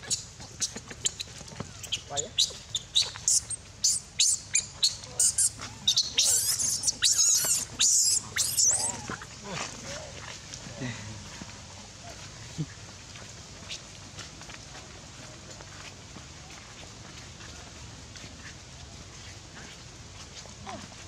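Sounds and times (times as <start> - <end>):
infant monkey screaming: 0.0 - 9.4.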